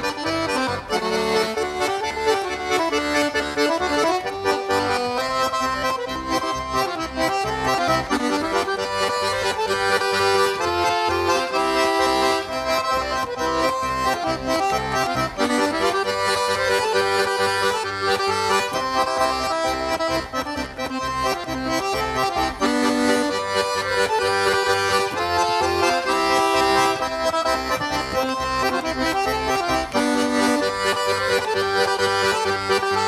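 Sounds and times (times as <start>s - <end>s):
button accordion playing folk tune: 0.0s - 33.0s.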